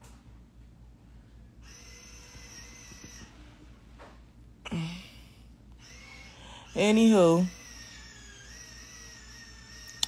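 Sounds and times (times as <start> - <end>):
low steady hum: 0.0 - 10.0
person breathing out: 4.7 - 5.5.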